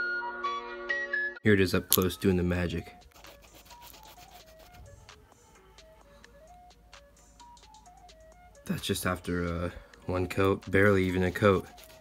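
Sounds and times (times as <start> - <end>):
soft background music: 0.0 - 12.0
marker tip scratching foam: 3.1 - 4.8, 11.4 - 12.0.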